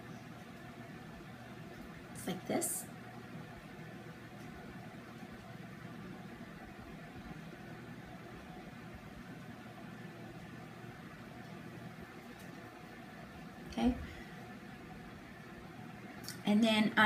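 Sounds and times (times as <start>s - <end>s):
faint steady hiss: 0.0s - 17.0s.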